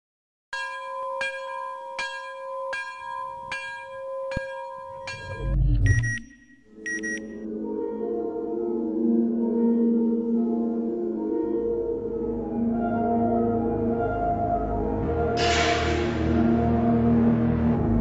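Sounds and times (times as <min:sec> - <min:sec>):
ringing bell-like tone: 0:00.6 - 0:07.5
short high beeps: 0:05.2 - 0:07.4
low ambient chord: 0:07.4 - 0:15.4.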